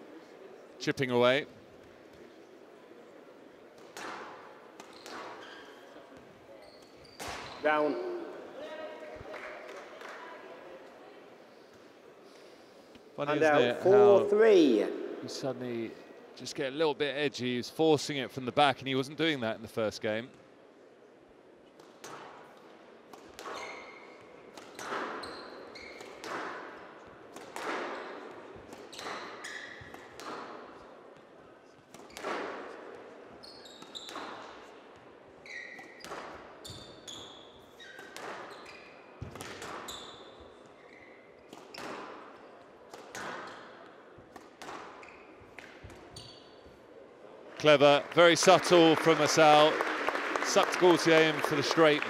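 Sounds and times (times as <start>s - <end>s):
shoe squeaks on court floor: 4.8s - 7.8s, 23.4s - 26.4s, 28.8s - 30.4s, 33.4s - 34.6s, 35.4s - 42.5s, 44.7s - 46.8s
squash ball hitting walls: 26.0s - 30.6s, 31.9s - 32.8s, 39.2s - 39.9s.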